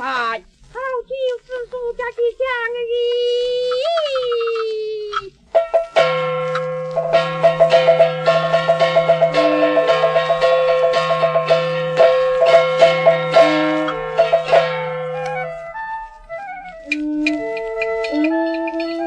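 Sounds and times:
high wind instrument melody: 5.1s - 19.0s
quick metallic percussion strikes: 5.5s - 15.4s.

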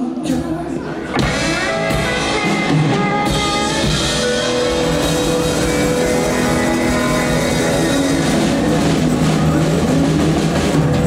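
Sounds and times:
bass guitar: 0.0s - 11.0s
keyboard: 0.0s - 11.0s
drum kit: 0.2s - 11.0s.

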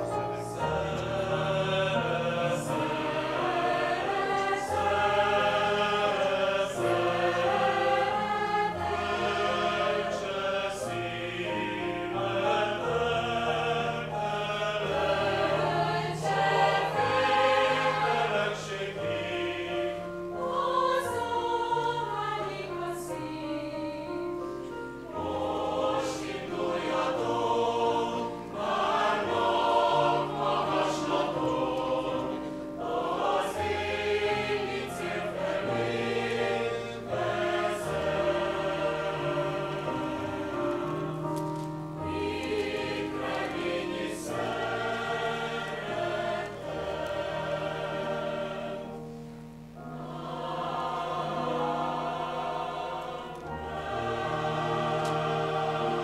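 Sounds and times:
mixed choir singing: 0.0s - 56.0s.

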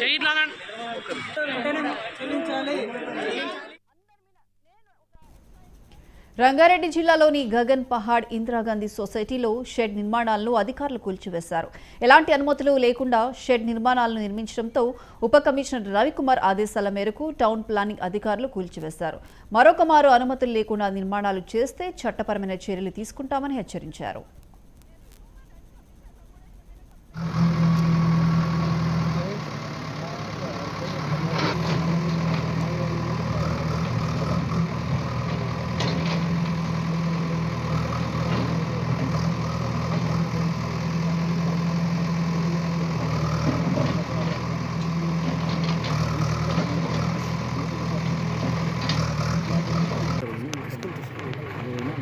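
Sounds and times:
diesel engine running: 27.0s - 52.0s.

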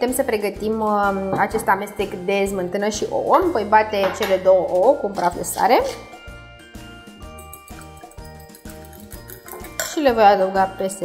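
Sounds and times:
background music with steady beat: 0.0s - 11.0s
fork beating eggs in glass bowl: 7.3s - 10.2s.

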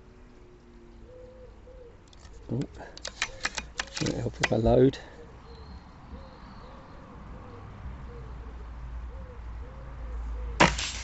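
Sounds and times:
low background noise: 0.0s - 11.0s
pigeon cooing: 0.4s - 4.3s, 5.0s - 10.6s.

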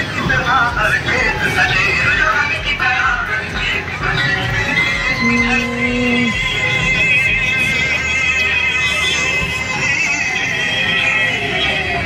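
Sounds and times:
steady low tone: 4.4s - 7.9s
wavering high melody: 4.5s - 11.6s.

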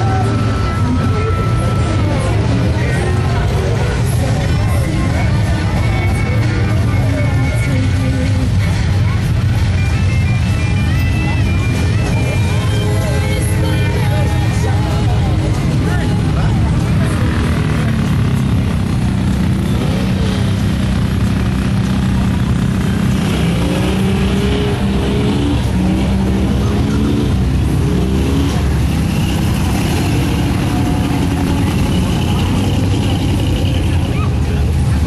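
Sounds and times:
music: 0.0s - 18.2s
people's voices: 0.0s - 35.0s
utility vehicle engine running: 0.0s - 35.0s.

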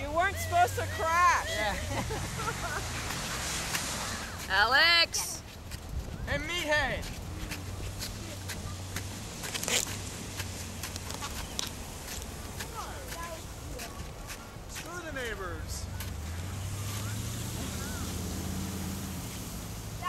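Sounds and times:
low engine hum: 5.4s - 20.0s.

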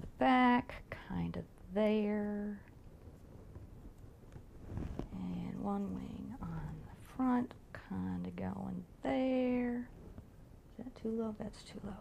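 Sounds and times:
soft ticks of fabric handled: 3.0s - 6.8s.

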